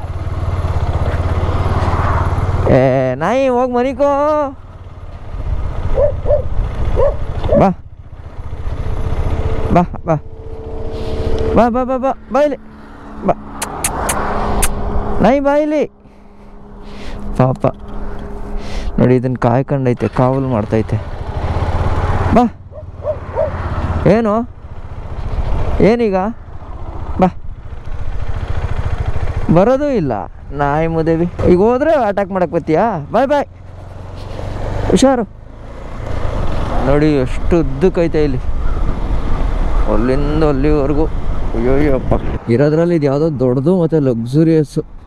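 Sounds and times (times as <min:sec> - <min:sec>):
motorcycle engine idling: 0:00.0 - 0:13.6, 0:14.7 - 0:36.0
dog barking: 0:05.9 - 0:07.7, 0:22.7 - 0:23.6.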